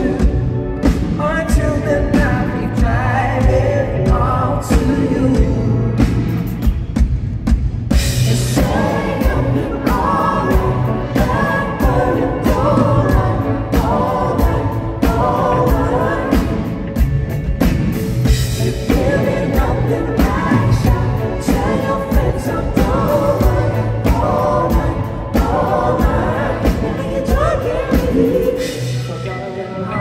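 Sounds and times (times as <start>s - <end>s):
man singing: 0.0s - 6.2s
pop-rock band playing: 0.0s - 30.0s.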